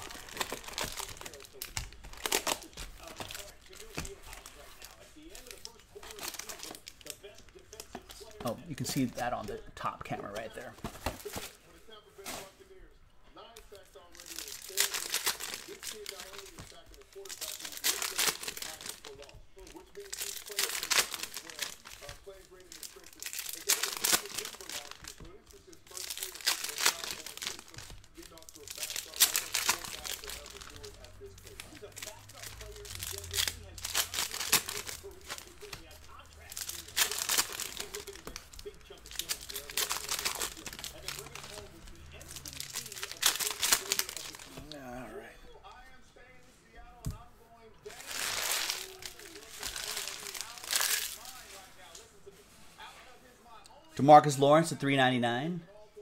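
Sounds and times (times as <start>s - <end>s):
foil wrappers crinkling and tearing: 0.0s - 12.8s, 13.4s - 44.9s, 47.8s - 54.1s.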